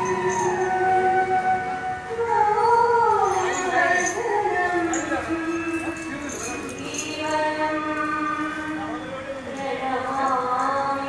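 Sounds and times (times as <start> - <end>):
person chanting long held notes: 0.0 - 11.0.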